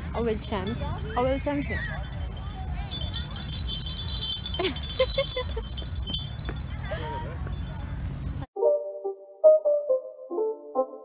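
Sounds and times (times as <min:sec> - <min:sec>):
metal chimes tinkling: 0:00.0 - 0:08.5.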